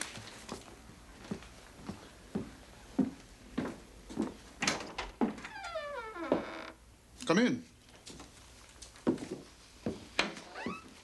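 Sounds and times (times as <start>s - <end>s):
footsteps on wooden floor: 1.2s - 4.4s, 5.2s - 6.7s, 8.8s - 11.0s
door hinges creaking: 4.6s - 6.8s, 10.2s - 11.0s.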